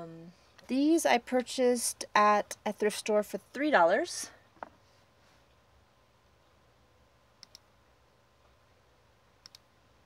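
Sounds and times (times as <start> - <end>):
computer mouse clicking: 7.4 - 7.7, 9.4 - 9.7.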